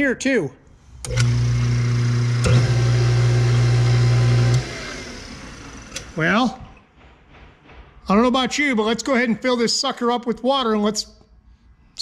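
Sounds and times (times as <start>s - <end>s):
electric motor humming: 1.0s - 6.2s
motor click: 1.0s - 6.2s.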